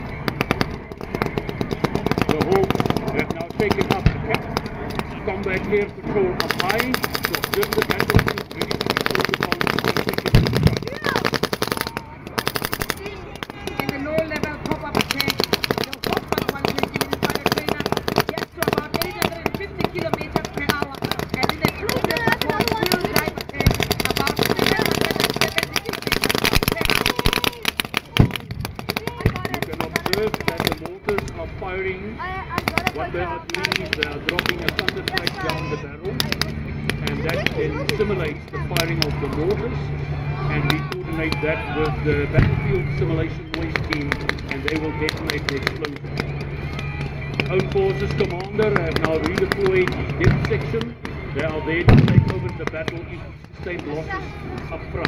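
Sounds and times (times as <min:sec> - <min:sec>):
steady low drone: 0:00.0 - 0:55.0
machine-gun fire: 0:00.2 - 0:05.1, 0:06.4 - 0:31.0, 0:32.6 - 0:35.6, 0:51.9 - 0:52.6.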